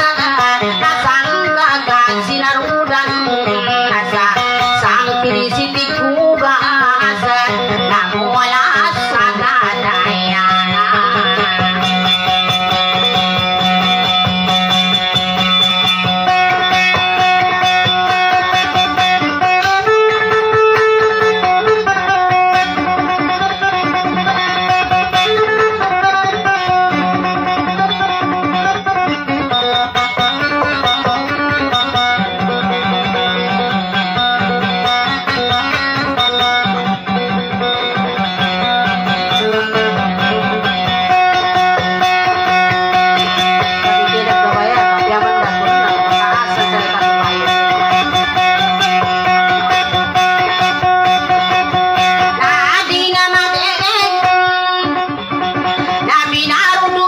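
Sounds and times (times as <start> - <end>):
plucked string instrument melody: 0.0 - 57.0.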